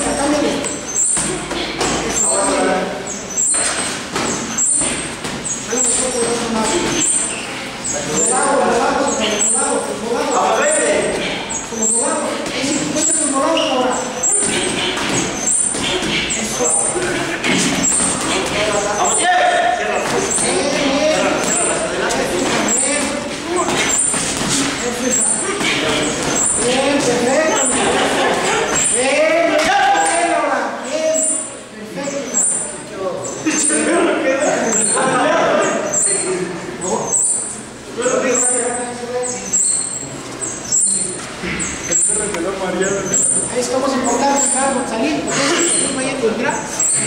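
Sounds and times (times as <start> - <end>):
indistinct human voices: 0.0 - 47.0.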